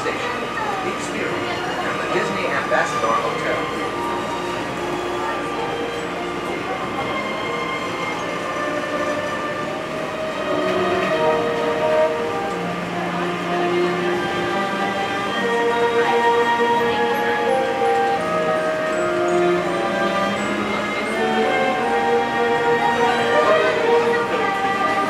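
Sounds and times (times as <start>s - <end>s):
monorail car running noise: 0.0s - 25.0s.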